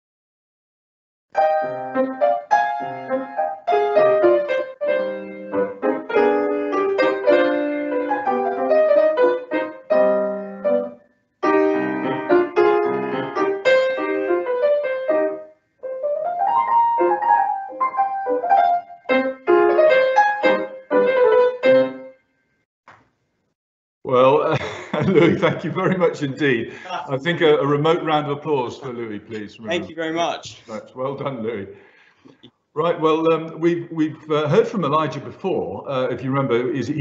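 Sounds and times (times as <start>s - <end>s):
solo grand piano: 1.4s - 22.2s.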